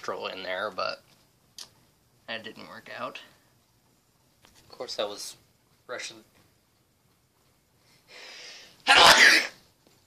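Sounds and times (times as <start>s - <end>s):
breath drawn in: 7.9s - 8.8s
man sneezing: 8.8s - 9.6s.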